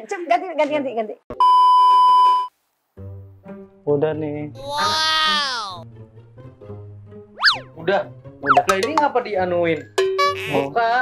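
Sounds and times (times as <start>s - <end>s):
electronic censor bleep: 1.4s - 2.5s
speech: 10.5s - 11.0s.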